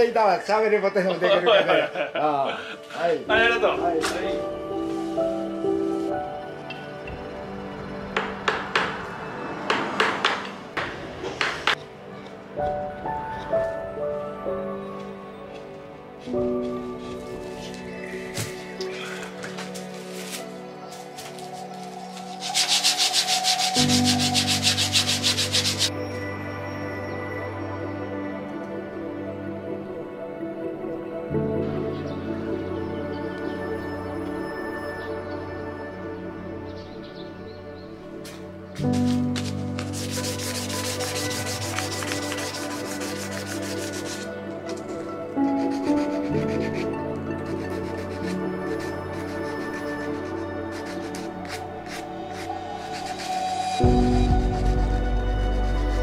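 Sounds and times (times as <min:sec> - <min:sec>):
background music: 0:00.0 - 0:56.0
sanding wood by hand: 0:21.2 - 0:25.9, 0:38.9 - 0:54.9.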